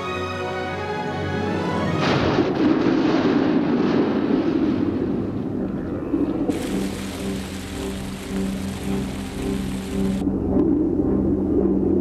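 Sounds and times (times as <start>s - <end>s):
orchestral film score: 0.0s - 2.7s
hiss of rushing water: 6.5s - 10.2s.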